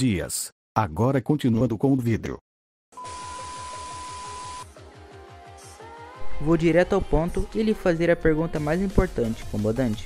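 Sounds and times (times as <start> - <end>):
steady high beep: 3.0 - 4.6
background music: 3.1 - 10.0.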